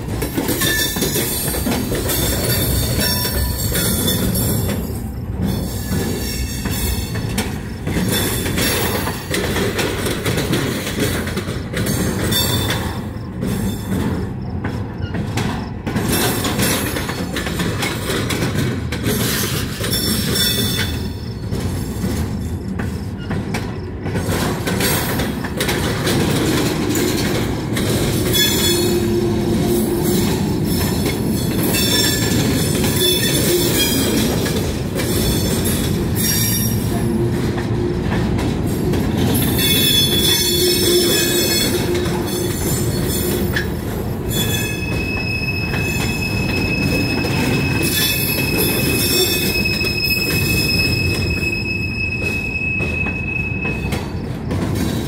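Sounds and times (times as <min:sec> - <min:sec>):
train wheels rumbling on rail: 0:00.0 - 0:55.0
wheel flanges squealing: 0:19.1 - 0:23.9, 0:27.9 - 0:38.4, 0:39.2 - 0:55.0.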